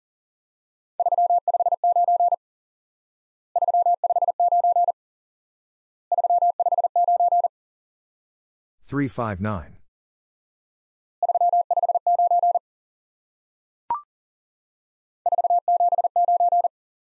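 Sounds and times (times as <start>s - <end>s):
morse code beeps: 1.0s - 2.4s, 3.6s - 5.0s, 6.1s - 7.5s, 11.2s - 12.6s, 15.3s - 16.7s.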